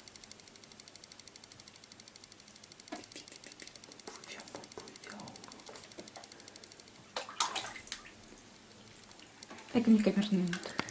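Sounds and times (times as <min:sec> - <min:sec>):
water splashing in bathtub: 0:07.1 - 0:10.7.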